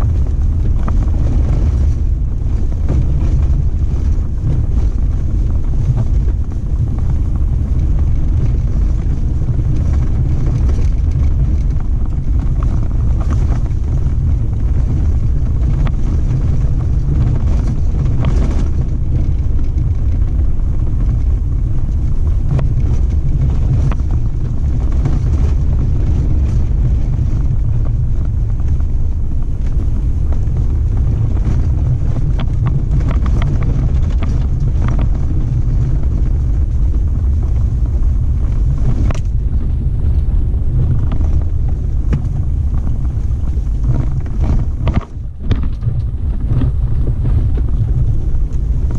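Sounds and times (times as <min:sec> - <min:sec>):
faint rattles and ticks: 0:00.0 - 0:48.9
vehicle engine and tyres rumbling: 0:00.0 - 0:48.9
wind noise on microphone: 0:00.0 - 0:48.9.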